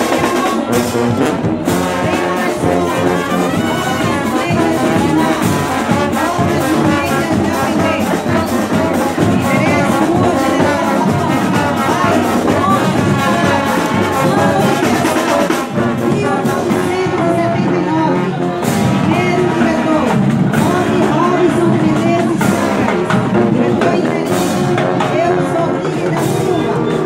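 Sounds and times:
brass band playing: 0.0s - 27.0s.

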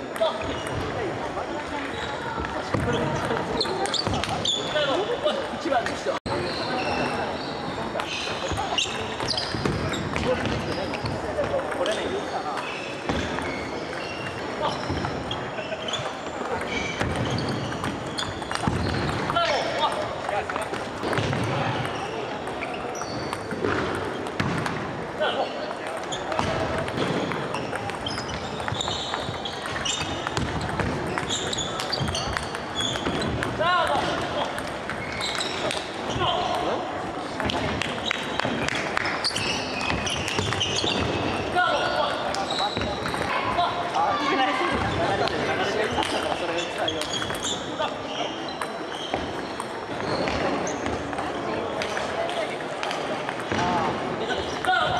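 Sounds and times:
murmur of voices: 0.0s - 54.9s
sports hall clatter and chatter: 0.0s - 54.9s
table tennis balls clicking: 16.0s - 24.8s, 25.6s - 43.3s, 45.2s - 47.6s.

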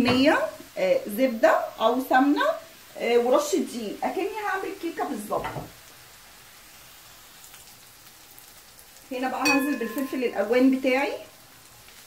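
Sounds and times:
onion sizzling in a frying pan: 0.0s - 12.0s.

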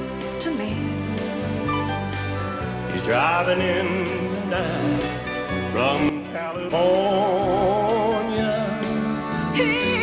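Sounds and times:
live country band: 0.0s - 10.0s
man singing: 2.8s - 10.0s.

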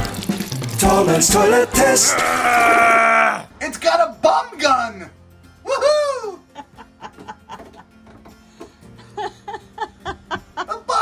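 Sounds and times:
soft background music: 3.6s - 11.0s
person laughing: 5.7s - 7.8s, 9.1s - 11.0s.

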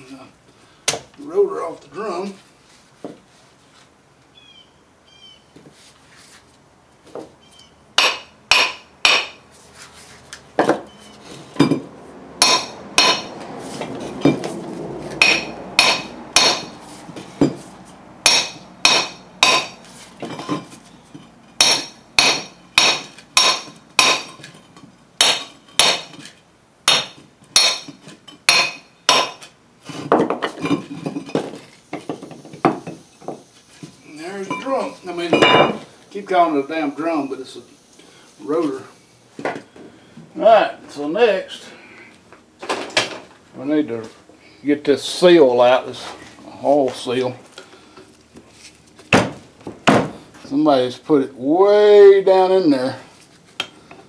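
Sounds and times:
hammer striking steel socket: 12.4s - 13.3s, 15.2s - 16.7s.

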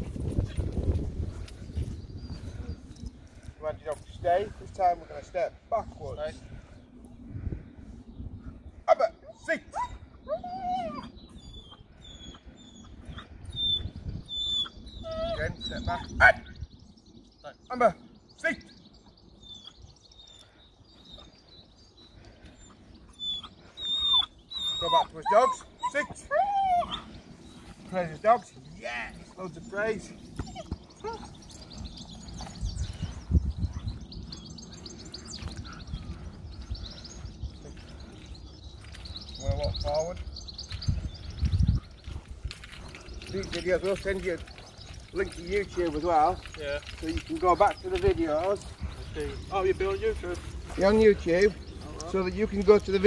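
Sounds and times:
small birds chirping: 0.0s - 53.0s
dog whimpering: 9.8s - 12.4s, 13.6s - 15.8s, 23.2s - 27.1s, 30.4s - 31.4s
dog whining: 9.8s - 12.9s, 13.6s - 15.8s, 23.2s - 27.1s, 30.4s - 31.4s.

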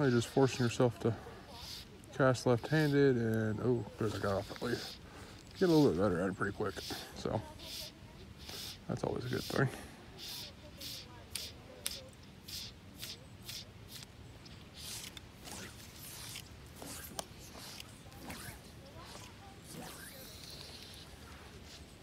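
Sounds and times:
fly line swishing through guides: 0.0s - 22.0s.

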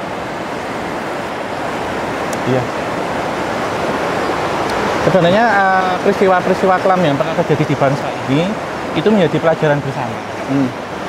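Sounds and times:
river rushing over rocks: 0.0s - 11.0s.

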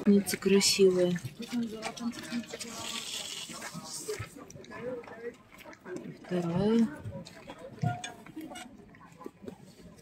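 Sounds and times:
faint indistinct speech: 1.0s - 10.0s.

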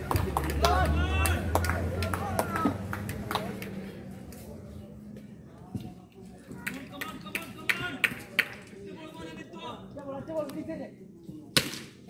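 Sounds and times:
men calling out: 0.5s - 2.9s.

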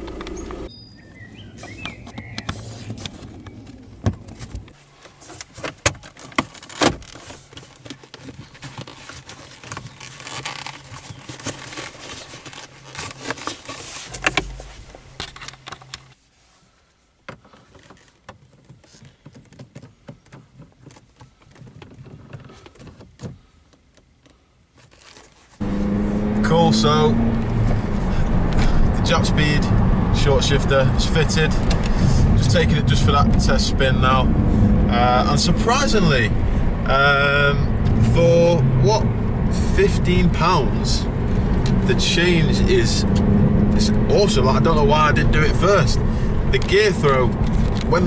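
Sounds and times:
low steady hum: 0.0s - 0.7s, 10.9s - 16.2s.

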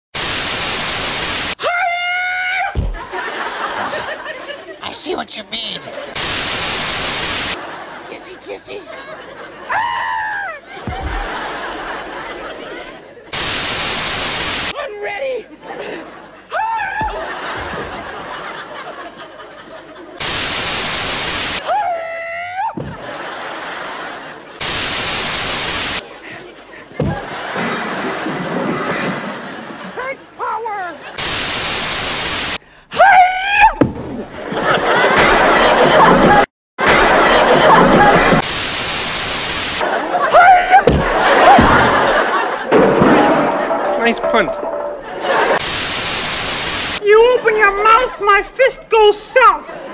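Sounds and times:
tv static hiss: 0.1s - 1.6s, 4.8s - 8.0s, 10.9s - 14.8s, 20.2s - 21.6s, 23.2s - 26.1s, 31.0s - 32.6s, 37.2s - 40.0s, 44.2s - 47.1s.

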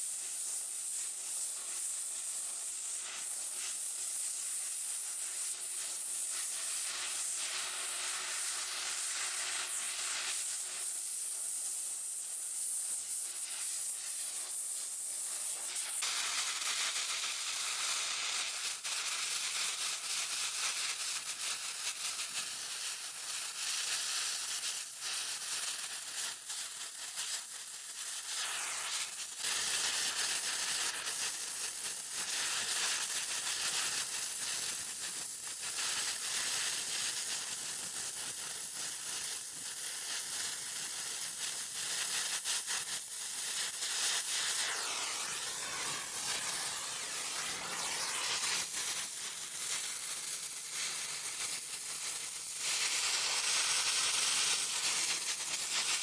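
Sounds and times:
gas torch flame hissing: 0.0s - 56.0s
high whistle in flame: 0.7s - 56.0s.

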